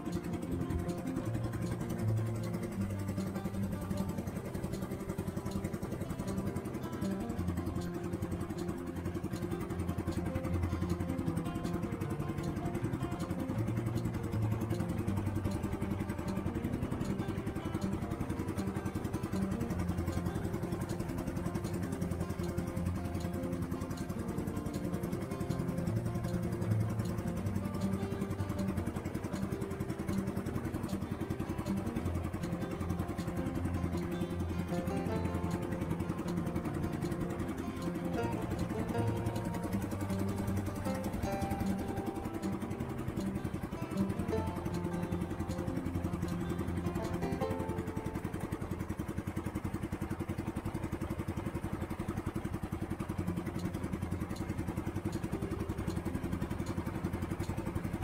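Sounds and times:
boat engine running: 0.0s - 58.0s
guitar background music: 0.0s - 58.0s.

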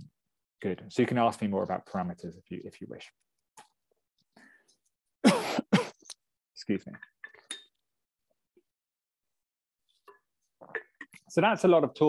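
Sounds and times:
man coughing: 5.2s - 6.1s.

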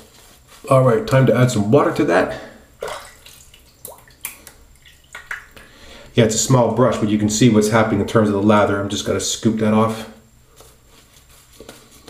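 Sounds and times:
water drips and small splashes: 2.8s - 5.7s.

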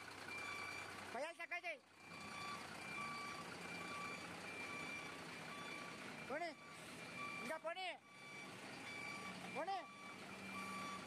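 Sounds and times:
truck reversing alarm beeping: 0.0s - 1.0s, 1.9s - 11.0s
truck engine running: 0.0s - 11.0s.

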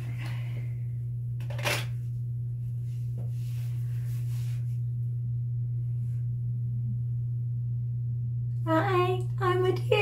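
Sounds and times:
steady low hum: 0.0s - 10.0s
woman speaking: 8.7s - 10.0s.

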